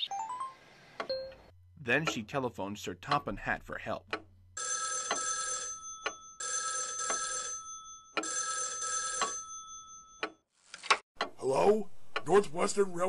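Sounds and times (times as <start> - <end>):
telephone bell ringing: 4.6 - 10.2.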